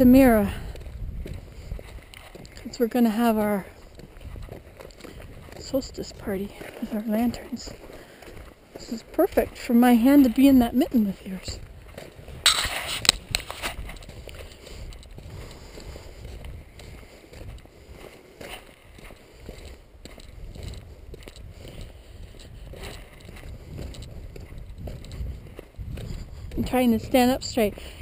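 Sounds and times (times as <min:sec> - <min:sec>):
wind rumble on microphone: 0:00.0 - 0:18.1, 0:18.9 - 0:28.0
faint footstep scuffs: 0:03.7 - 0:26.7.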